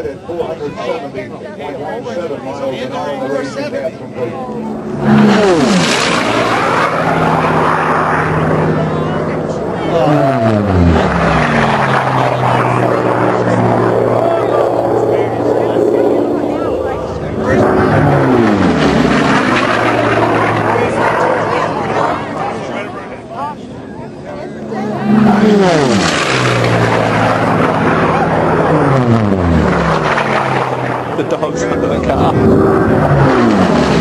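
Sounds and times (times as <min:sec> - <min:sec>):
racing planes passing low: 0:00.0 - 0:34.0.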